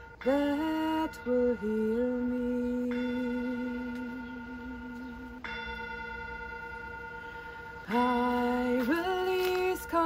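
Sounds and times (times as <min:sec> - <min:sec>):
metal singing bowl ringing: 0:00.0 - 0:10.0.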